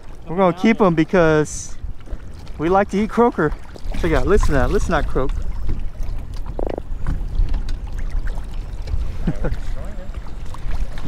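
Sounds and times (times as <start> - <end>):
water lapping: 0.0 - 11.0
wind rumbling on microphone: 0.0 - 11.0.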